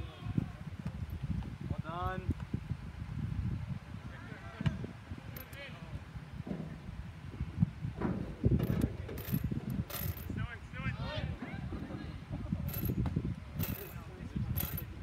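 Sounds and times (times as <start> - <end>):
distant players shouting: 10.3 - 12.2.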